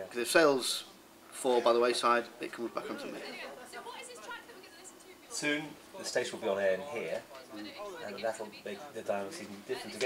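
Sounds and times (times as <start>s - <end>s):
man speaking: 0.0s - 3.3s, 5.3s - 10.0s
background talking: 0.0s - 10.0s.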